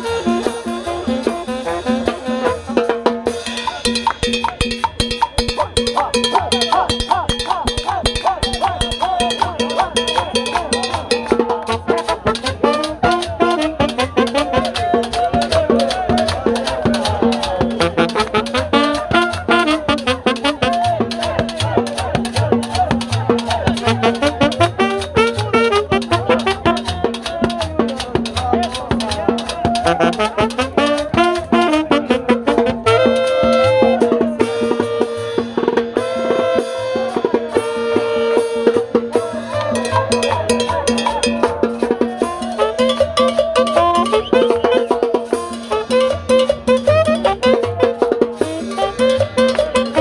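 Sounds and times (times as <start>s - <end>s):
brass horns playing melody: 0.0s - 4.1s, 5.4s - 16.1s, 17.4s - 22.1s, 23.1s - 27.3s, 29.8s - 41.0s, 42.2s - 50.0s
crowd voices: 0.0s - 50.0s
double bass: 0.0s - 50.0s
steady drum beat: 0.0s - 50.0s.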